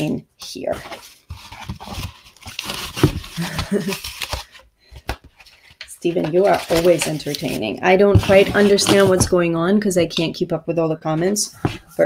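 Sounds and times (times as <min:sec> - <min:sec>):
paper and cardboard handling: 0:00.4 - 0:10.3
woman laughing breathily: 0:03.3 - 0:04.1.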